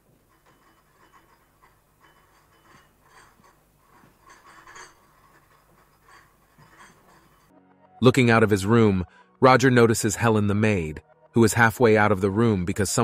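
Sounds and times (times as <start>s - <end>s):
china cups and dishes clinking: 0.0s - 7.5s.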